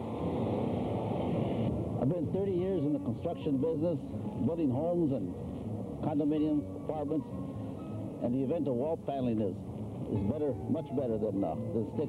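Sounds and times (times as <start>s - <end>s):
steady rushing noise: 0.0s - 6.2s.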